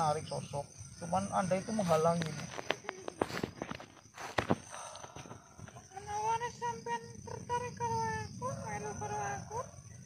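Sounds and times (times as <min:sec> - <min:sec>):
clicks and rustles of movement: 0:02.2 - 0:05.8.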